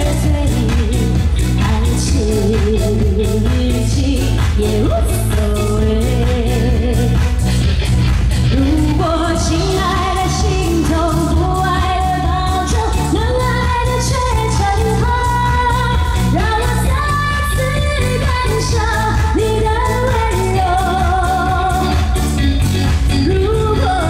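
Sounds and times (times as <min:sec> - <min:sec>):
woman singing into a microphone: 0:00.0 - 0:07.6, 0:08.5 - 0:24.0
backing track with steady beat: 0:00.0 - 0:24.0.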